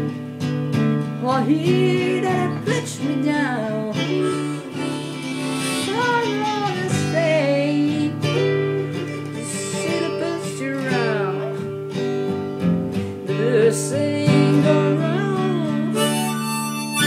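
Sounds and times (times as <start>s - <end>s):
acoustic guitar slow blues: 0.0s - 17.0s
sliding bending guitar melody: 0.0s - 17.0s.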